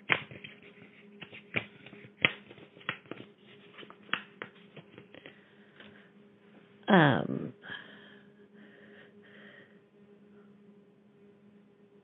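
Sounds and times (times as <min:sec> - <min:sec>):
faint phone line hum: 0:04.8 - 0:12.0.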